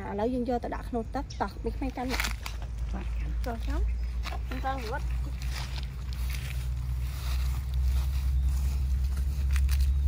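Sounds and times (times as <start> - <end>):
low rumble: 0.7 - 10.0
footsteps through tall grass: 2.0 - 10.0.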